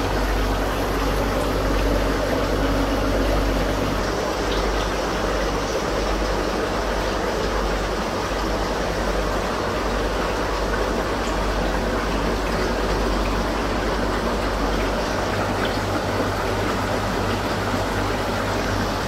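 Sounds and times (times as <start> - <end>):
aquarium water bubbling: 0.0 - 19.0
low pump hum: 0.0 - 19.0.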